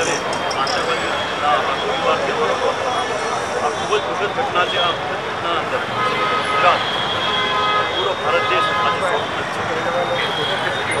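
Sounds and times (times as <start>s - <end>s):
man speaking loudly: 0.0s - 2.7s
street traffic: 0.0s - 11.0s.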